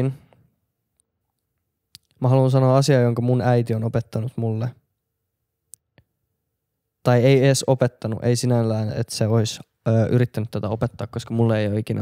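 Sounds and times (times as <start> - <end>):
man speaking: 0.0 - 0.2, 2.2 - 4.8, 7.0 - 12.0.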